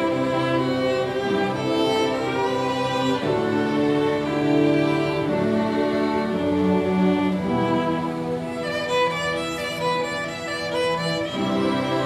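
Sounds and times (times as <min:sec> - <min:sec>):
lower strings holding notes: 0:00.0 - 0:12.0
solo violin melody: 0:00.0 - 0:12.0.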